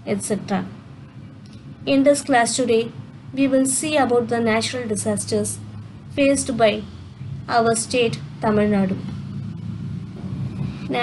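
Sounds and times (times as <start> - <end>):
low background rumble and hum: 0.0 - 11.0.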